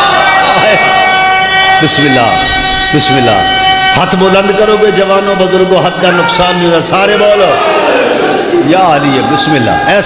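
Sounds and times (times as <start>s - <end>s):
high tone over loudspeakers: 0.0s - 7.6s
man speaking over loudspeakers: 1.7s - 10.0s.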